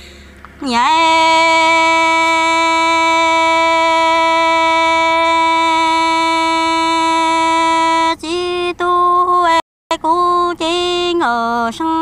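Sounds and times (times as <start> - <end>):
woman singing a long note: 0.6 - 12.0.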